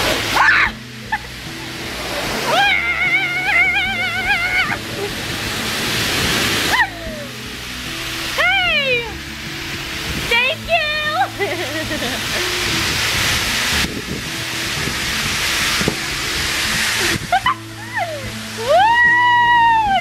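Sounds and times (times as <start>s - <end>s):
blower air rushing: 0.0s - 8.4s, 9.2s - 19.2s
girl squealing and laughing: 0.3s - 1.3s, 2.4s - 4.8s, 6.7s - 7.4s, 17.0s - 20.0s.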